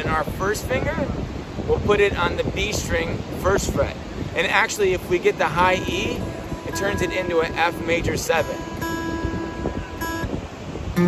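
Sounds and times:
acoustic guitar chord strummed: 5.5 - 11.0.

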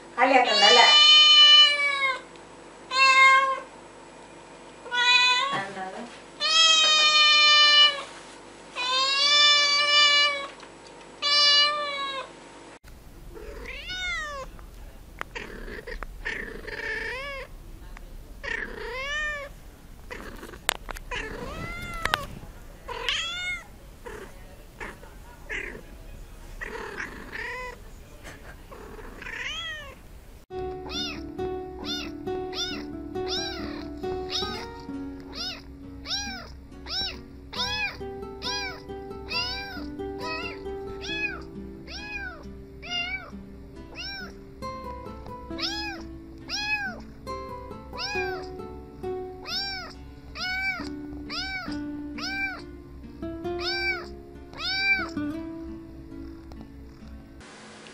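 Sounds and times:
cat meowing: 0.5 - 2.2, 2.9 - 3.7, 4.9 - 5.6, 6.4 - 8.1, 8.8 - 10.6, 11.2 - 12.3, 13.3 - 14.5, 15.2 - 17.5, 18.4 - 25.9, 26.6 - 27.8, 28.7 - 30.0, 30.8 - 43.3, 43.9 - 44.4, 45.6 - 47.2, 48.0 - 48.6, 49.4 - 52.8, 53.6 - 55.3
kitten meowing: 0.5 - 2.2, 2.9 - 3.6, 4.9 - 5.6, 6.4 - 8.0, 8.8 - 10.5, 11.2 - 12.3, 13.3 - 14.5, 15.2 - 17.5, 18.4 - 25.8, 26.6 - 27.8, 28.7 - 30.0, 30.8 - 43.3, 43.9 - 44.4, 45.6 - 47.1, 48.0 - 48.6, 49.4 - 52.7, 53.6 - 55.2
background music: 30.5 - 57.4.

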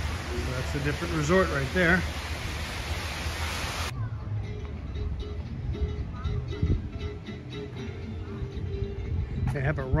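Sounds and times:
rushing wind or water: 0.0 - 4.0
light background music: 3.9 - 10.0.

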